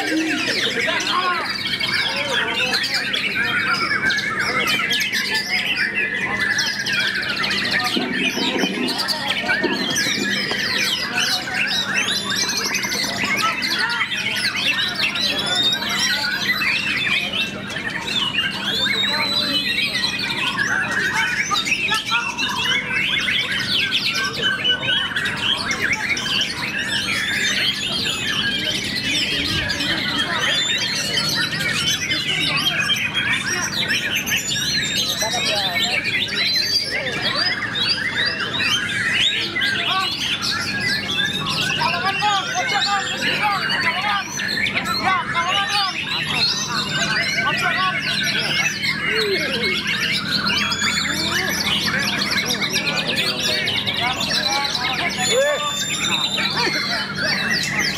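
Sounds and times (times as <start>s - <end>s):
bird singing whistles and trills: 0.0s - 57.9s.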